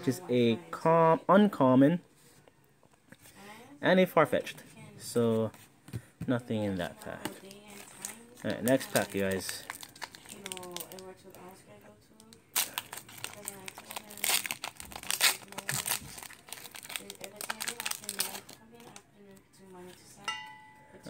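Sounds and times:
cards rustling: 5.2s - 11.0s
foil wrapper crinkling: 6.9s - 11.6s, 12.3s - 19.0s.

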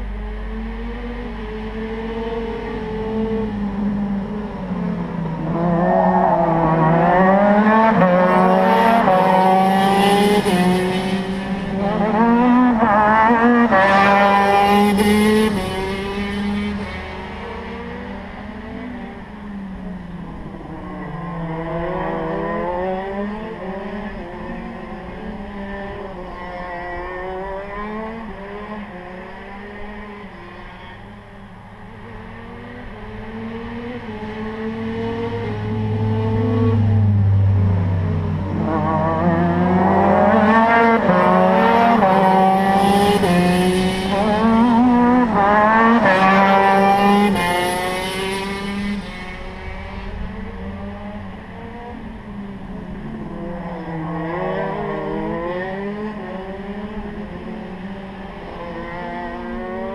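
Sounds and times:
kart engines at high revs: 5.4s - 19.1s, 32.5s - 52.2s.

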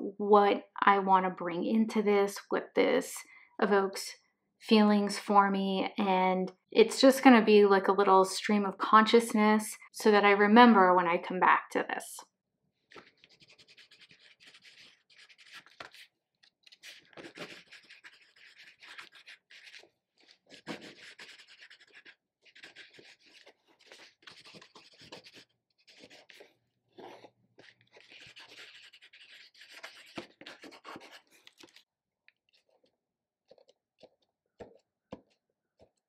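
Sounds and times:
pencil scratching on paper: 12.9s - 31.8s.

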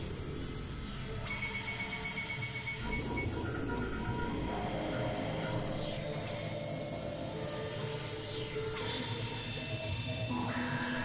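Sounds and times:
droning synthesizer: 0.0s - 11.0s
rapidly pulsing high beep: 0.9s - 3.5s
lower pulsing beep: 1.0s - 3.4s.

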